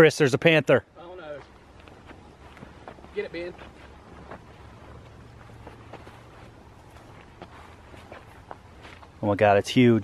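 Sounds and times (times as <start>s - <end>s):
footsteps on grass: 1.2s - 9.4s.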